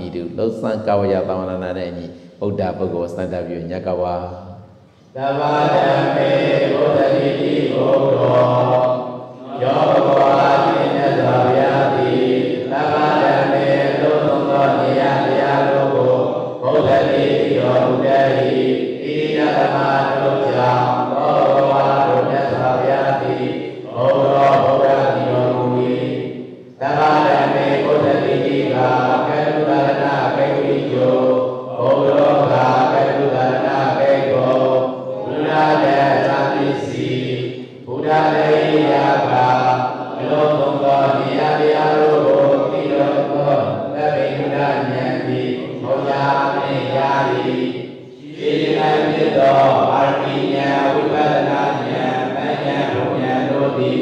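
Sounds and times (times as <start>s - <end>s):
monk chanting through microphone: 0.0s - 54.0s.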